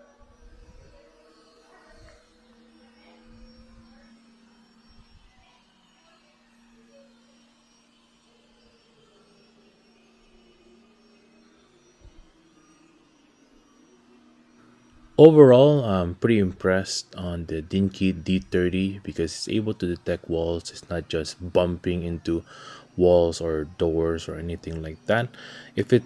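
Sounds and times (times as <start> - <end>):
robot vacuum humming: 0.0 - 26.0.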